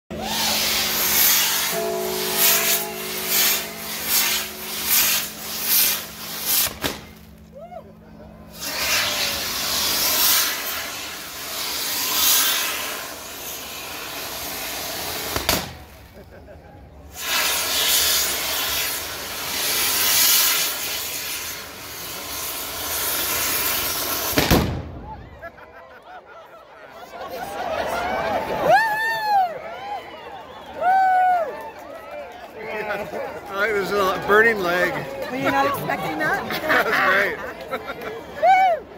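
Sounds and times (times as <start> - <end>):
fireworks sparks hissing: 0.1 - 7.5, 8.4 - 16.4, 17.1 - 25.0
sharp bangs: 0.2 - 7.5, 14.6 - 16.0, 22.8 - 25.3.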